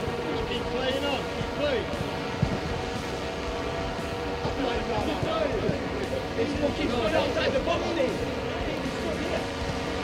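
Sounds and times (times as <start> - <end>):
people calling and laughing: 0.0 - 10.0
wind rumble on microphone: 0.0 - 10.0.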